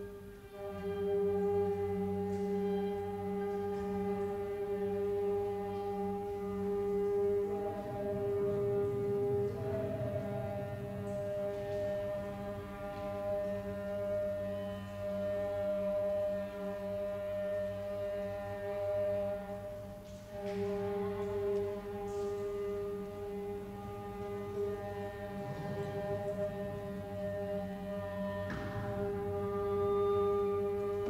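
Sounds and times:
layered experimental music drone: 0:00.0 - 0:31.0.

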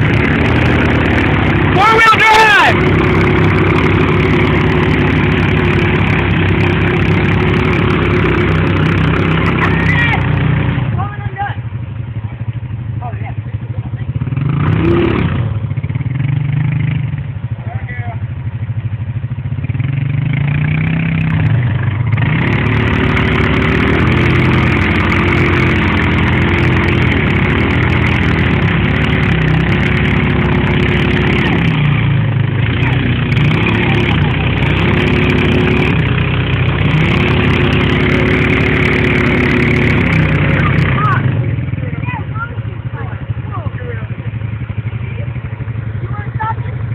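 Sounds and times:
atv engines revving under load: 0:00.0 - 0:46.9.

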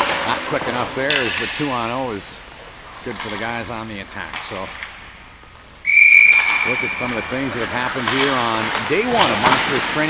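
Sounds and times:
whistle long high blast: 0:05.8 - 0:06.9.

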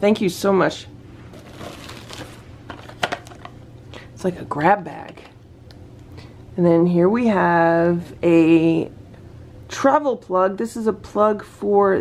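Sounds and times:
plastic blister pack rustling: 0:01.3 - 0:03.6.

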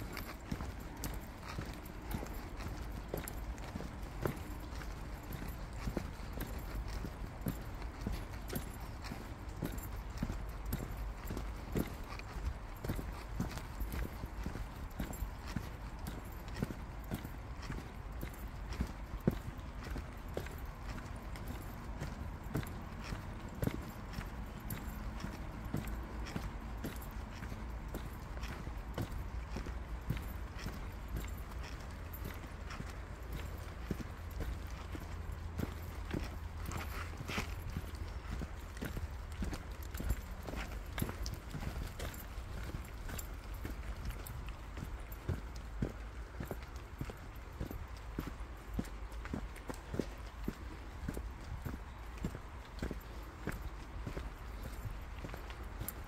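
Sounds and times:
footsteps on dirt trail: 0:00.0 - 0:56.0.

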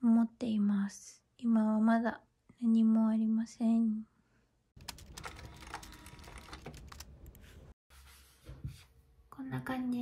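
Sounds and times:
keyboard typing clicks: 0:04.8 - 0:07.4.

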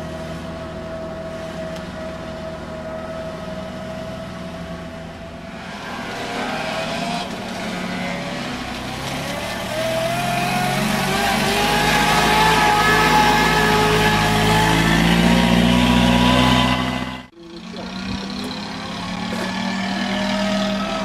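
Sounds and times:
car engine running: 0:00.0 - 0:19.9
wheels swishing through water: 0:01.3 - 0:17.0.

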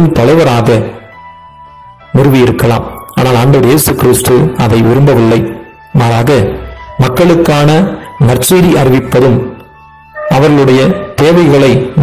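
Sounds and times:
soft background music: 0:00.0 - 0:12.0
man speaking: 0:02.2 - 0:09.6, 0:10.3 - 0:12.0.

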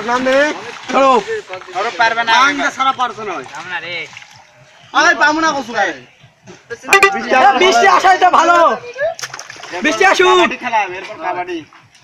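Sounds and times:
mud splashing: 0:00.0 - 0:04.8.

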